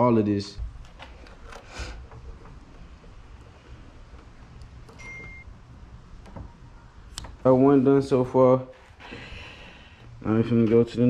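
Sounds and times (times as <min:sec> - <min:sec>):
low steady hum: 0:00.0 - 0:11.0
tape being pressed: 0:04.1 - 0:07.6.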